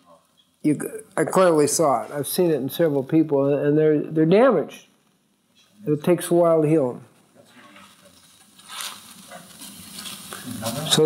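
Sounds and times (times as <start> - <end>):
soft hiss: 0.0 - 11.0.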